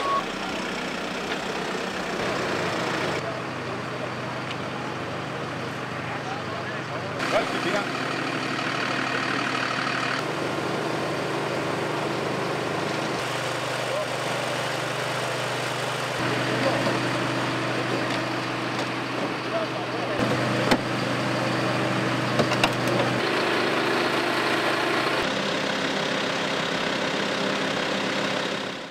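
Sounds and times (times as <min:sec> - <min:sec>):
engines idling: 0:00.0 - 0:28.9.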